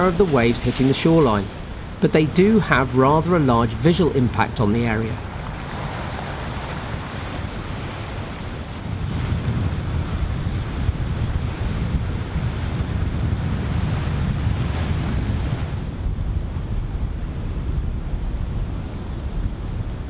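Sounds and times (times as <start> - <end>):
surf breaking on shore: 0.0 - 20.0
wind rumbling on microphone: 0.0 - 20.0.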